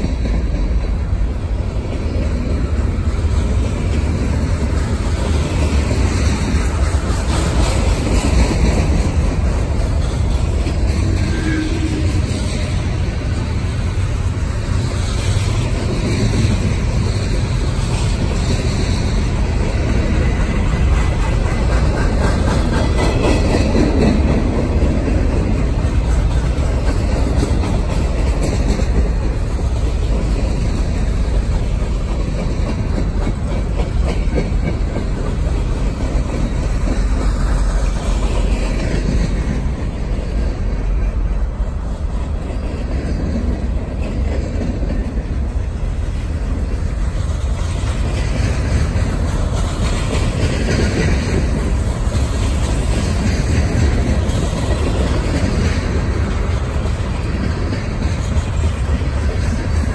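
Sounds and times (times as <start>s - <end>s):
freight train wheels rumbling on rails: 0.0s - 59.9s.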